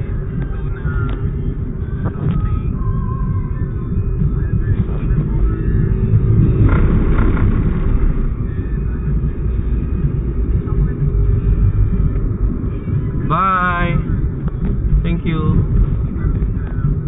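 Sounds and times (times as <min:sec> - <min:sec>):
car engine and tyres rumbling: 0:00.0 - 0:17.0.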